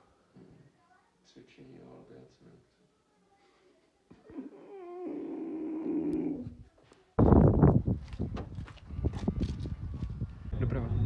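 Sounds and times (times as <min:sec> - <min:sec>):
person's low rasping growl: 0:04.3 - 0:06.6.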